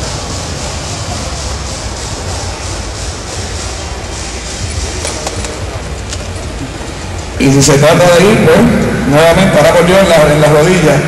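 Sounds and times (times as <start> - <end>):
faint murmur of voices: 0.0 - 11.0.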